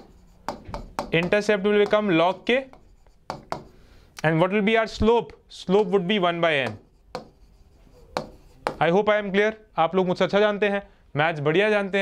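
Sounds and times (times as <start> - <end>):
pen tapping on glass screen: 0.0 - 3.8, 6.6 - 7.4, 8.1 - 8.9
man talking: 1.1 - 2.8, 4.2 - 6.8, 8.0 - 12.0.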